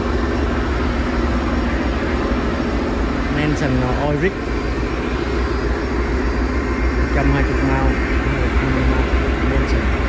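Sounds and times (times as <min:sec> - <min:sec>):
boat engine droning: 0:00.0 - 0:10.0.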